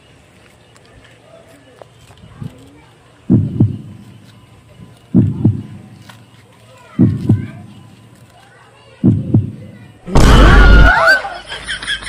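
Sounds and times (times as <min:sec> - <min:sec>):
heartbeat double thump: 0:03.3 - 0:04.0, 0:05.1 - 0:05.8, 0:07.0 - 0:07.7, 0:09.0 - 0:10.3.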